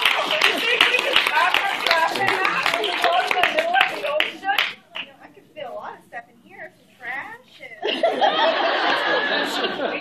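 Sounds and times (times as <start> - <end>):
audience clapping: 0.0 - 5.1.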